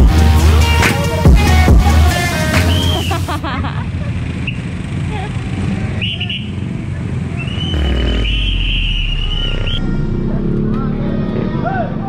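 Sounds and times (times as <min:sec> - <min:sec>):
motorcycle engines rumbling: 0:00.0 - 0:12.0
high whistle-like tone: 0:07.4 - 0:10.3.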